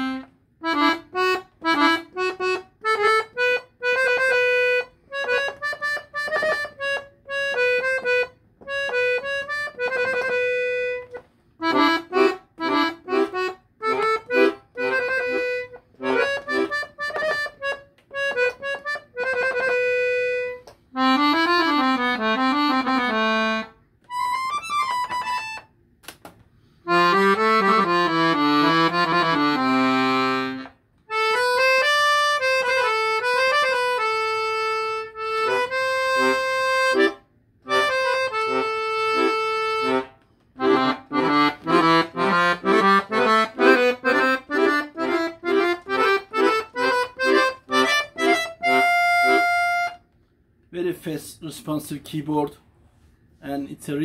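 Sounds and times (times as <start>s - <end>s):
accordion playing: 0.0s - 25.8s, 26.8s - 50.4s.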